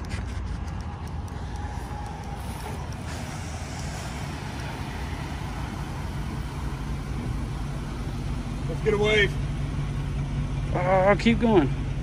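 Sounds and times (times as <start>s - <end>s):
van engine rumbling: 0.0s - 12.0s.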